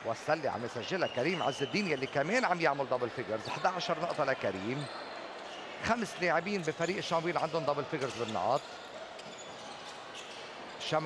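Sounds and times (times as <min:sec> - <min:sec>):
crowd murmur: 0:00.0 - 0:11.0.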